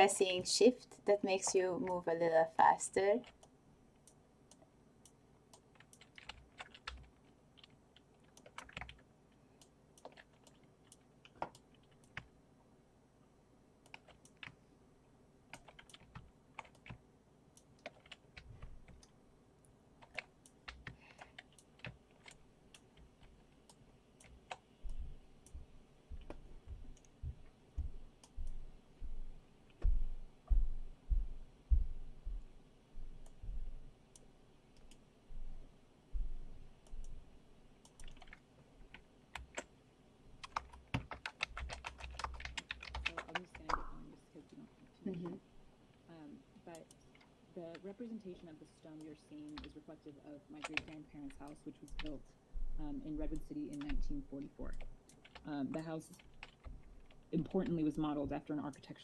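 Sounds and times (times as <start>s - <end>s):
keyboard keys clicking: 5.8s - 9.0s, 15.5s - 17.0s, 17.7s - 19.1s, 37.8s - 39.7s, 40.4s - 44.1s, 50.6s - 52.2s, 53.2s - 57.3s.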